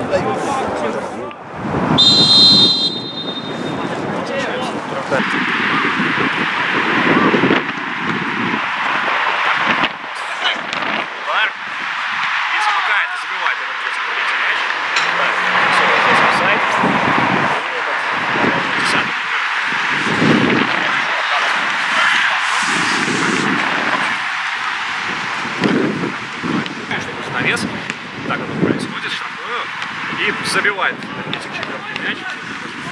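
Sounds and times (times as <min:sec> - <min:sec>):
players shouting: 0:00.0 - 0:32.9
rushing outdoor background noise: 0:00.0 - 0:32.9.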